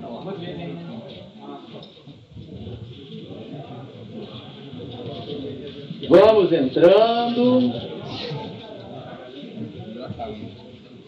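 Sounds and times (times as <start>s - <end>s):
indistinct background chatter: 0.0s - 11.0s.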